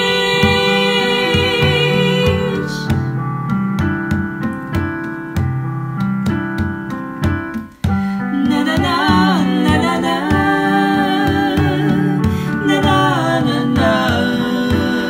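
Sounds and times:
person singing: 0.0s - 3.2s, 7.9s - 15.0s
hand drum beats: 0.0s - 15.0s
piano playing repeated chords: 0.0s - 15.0s.

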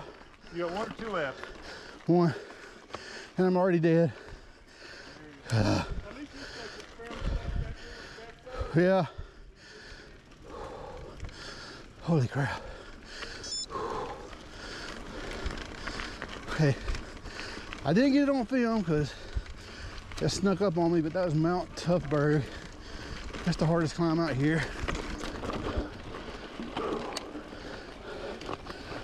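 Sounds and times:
person panting hard: 0.0s - 3.4s, 4.0s - 17.8s, 19.1s - 20.2s, 22.4s - 23.4s, 24.6s - 29.0s
bike rolling on dirt: 0.0s - 29.0s.

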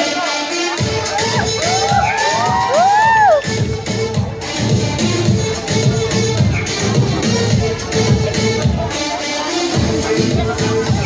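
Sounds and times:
pop dance music: 0.0s - 11.0s
audience cheering and shrieking: 0.8s - 3.7s.

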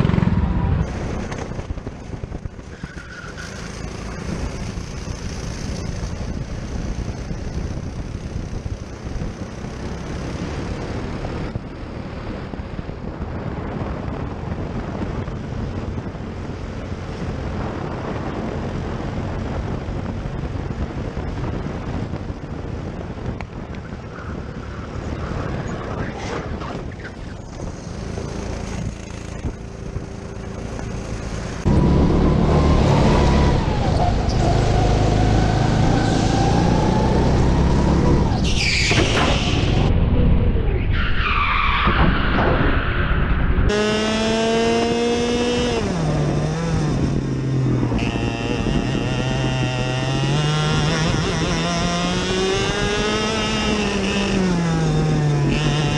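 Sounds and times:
wind noise on microphone: 0.0s - 55.9s
go-kart engine running: 3.4s - 12.6s, 26.4s - 35.7s, 43.7s - 55.9s.

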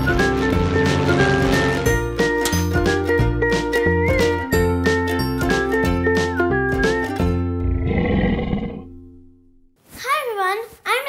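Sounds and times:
intro jingle: 0.0s - 2.8s
growling roar: 7.6s - 8.9s.

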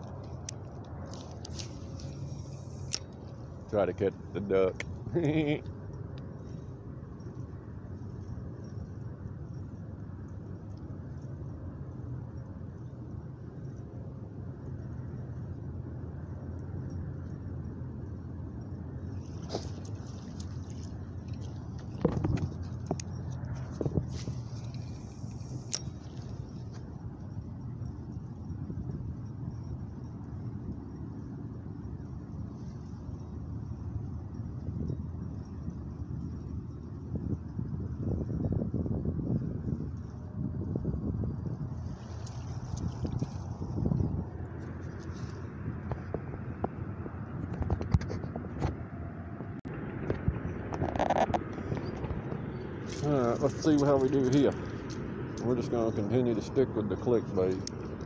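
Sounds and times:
light clicks and scrapes: 0.0s - 3.8s, 19.2s - 26.9s, 41.8s - 46.8s, 47.4s - 48.8s, 52.8s - 56.2s
low outdoor rumble: 0.0s - 58.0s.

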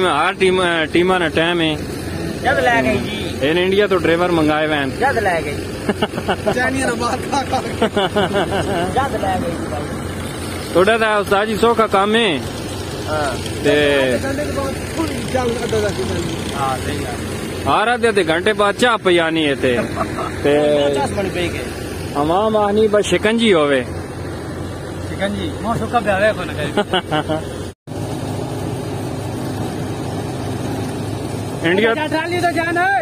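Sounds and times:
people talking: 0.0s - 10.0s, 10.7s - 23.9s, 25.0s - 27.4s, 31.6s - 33.0s
tractor diesel engine idling: 0.0s - 33.0s.

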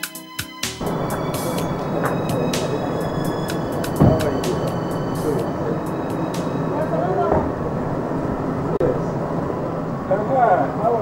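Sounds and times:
steady noisy background: 0.8s - 11.0s.

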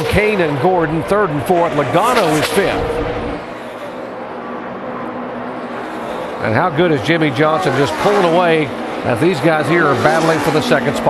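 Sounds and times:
race car engines: 0.0s - 11.0s.

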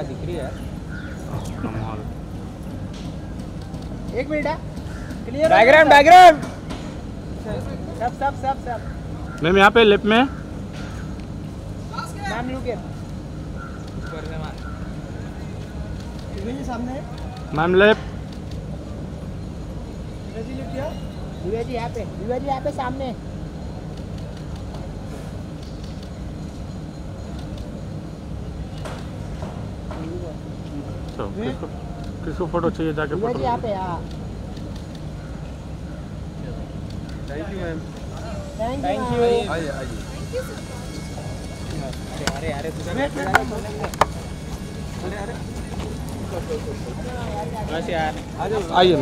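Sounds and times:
indistinct voices talking: 0.0s - 49.0s
faint voices: 29.8s - 49.0s.

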